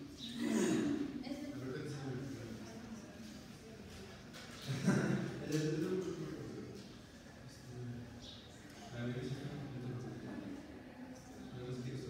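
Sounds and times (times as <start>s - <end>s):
faint indistinct voices talking: 0.0s - 12.0s.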